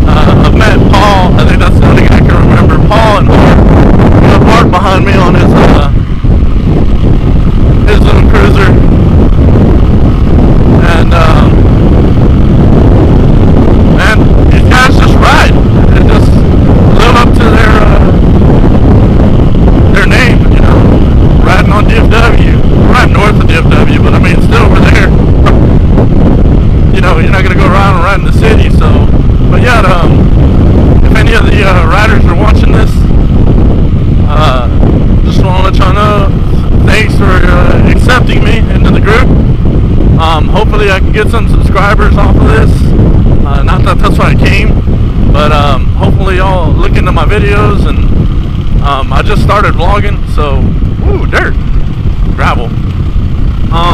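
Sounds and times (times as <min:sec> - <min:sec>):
motorcycle engine running: 0:00.0 - 0:53.9
wind buffeting microphone: 0:00.0 - 0:53.9.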